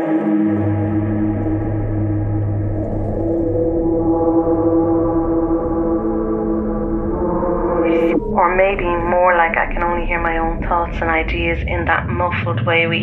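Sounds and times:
ambient music drone: 0.0 - 12.3
deep low note: 0.9 - 13.0.

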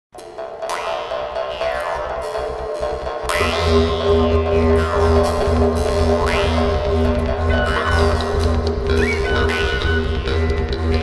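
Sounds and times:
jaw harp twanging: 0.6 - 11.0
steady drone: 3.2 - 11.0.

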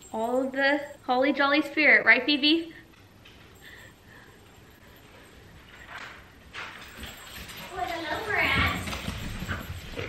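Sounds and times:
dog paws clicking on wooden floor: 4.6 - 10.0.

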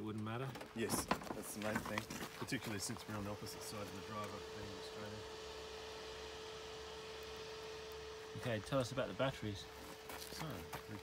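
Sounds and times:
steady electrical hum tone: 0.0 - 11.0.

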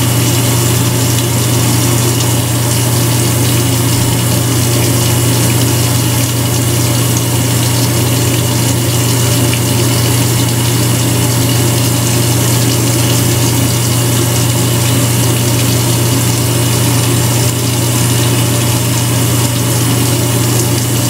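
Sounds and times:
electric trimmer humming: 0.0 - 21.0.

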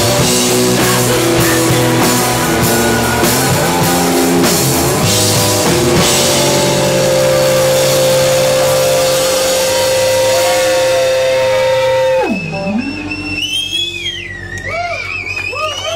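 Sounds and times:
electric guitar feedback: 0.0 - 15.3.

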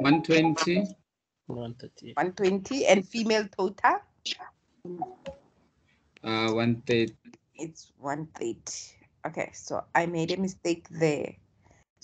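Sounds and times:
person muttering: 0.0 - 0.9, 1.5 - 2.6, 6.3 - 7.1.

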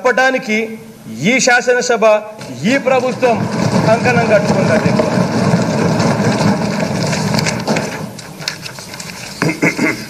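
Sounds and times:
people thumping desks: 2.4 - 9.6.

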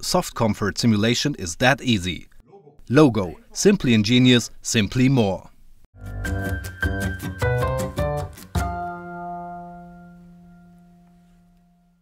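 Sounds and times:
held chord ringing: 8.6 - 12.0.

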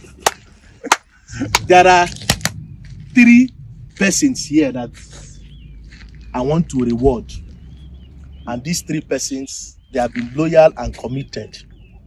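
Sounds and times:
sharp hand claps: 0.1 - 2.6.

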